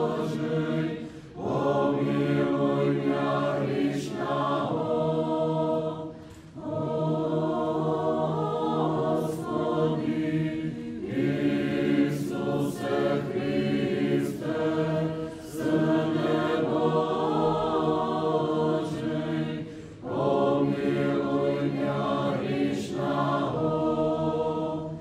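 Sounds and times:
choir chanting a cappella: 0.0s - 25.0s.

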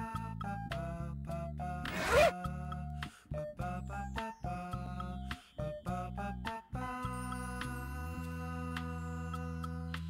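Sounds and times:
light music of repeating notes: 0.0s - 10.0s
zipper rasp: 1.9s - 2.4s.

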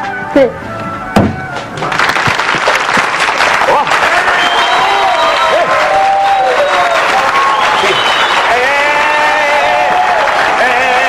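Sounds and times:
audience applauding: 1.8s - 11.0s.

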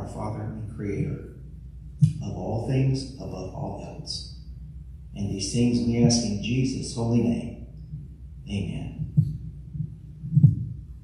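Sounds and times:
steady low hum: 0.0s - 11.0s
dull low thumps: 0.9s - 2.6s, 7.2s - 11.0s.

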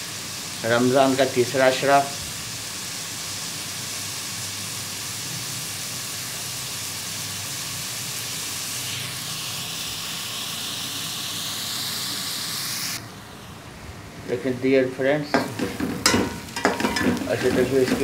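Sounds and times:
onions sizzling in oil: 0.0s - 18.0s.

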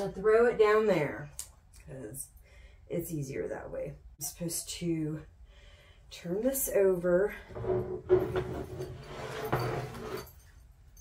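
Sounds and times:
metal frame scraping on desktop: 7.5s - 10.4s.

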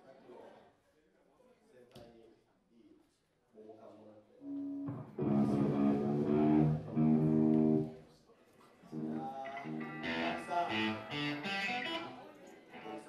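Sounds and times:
electric guitar chords ringing: 4.4s - 8.0s, 8.9s - 12.2s.

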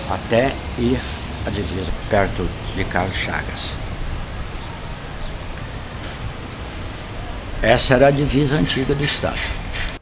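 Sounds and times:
even hiss: 0.0s - 10.0s
low rumble: 0.6s - 8.6s.

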